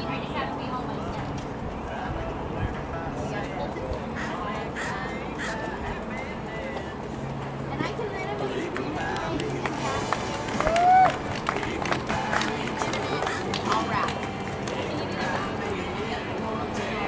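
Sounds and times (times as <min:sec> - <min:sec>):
music: 0:00.0 - 0:17.0
people chattering: 0:00.0 - 0:17.0
loud rising and falling call: 0:10.5 - 0:11.2.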